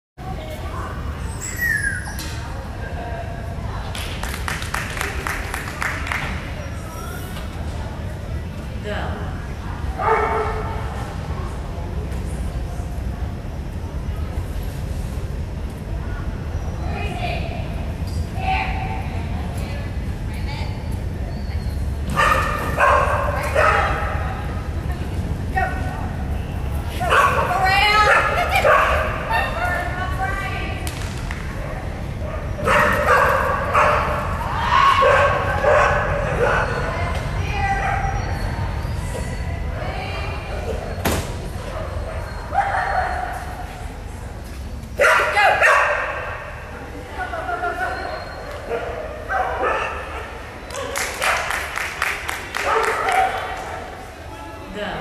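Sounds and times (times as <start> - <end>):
low hum of a large hall: 0.2 - 55.0
dog barking: 10.0 - 10.6, 22.2 - 24.2, 27.1 - 29.1, 32.3 - 34.2, 35.0 - 36.8, 45.0 - 46.3, 48.7 - 51.5, 52.6 - 53.5
dog barking and yipping: 32.7 - 34.2.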